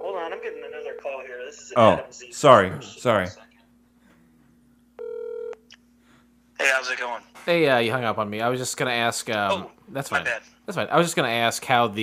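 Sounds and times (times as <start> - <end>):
telephone beep: 5.0 - 5.6.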